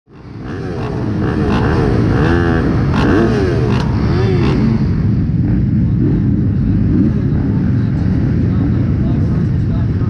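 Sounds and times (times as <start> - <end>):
motorcycle engines revving: 0.1 - 10.0.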